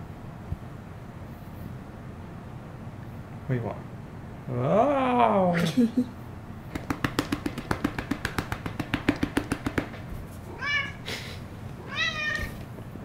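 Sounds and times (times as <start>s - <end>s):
cat meowing: 10.5s - 11.0s, 11.8s - 12.6s.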